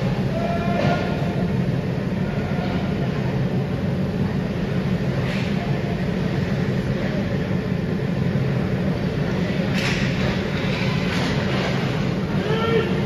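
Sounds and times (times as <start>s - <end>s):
low arena rumble: 0.0s - 13.0s.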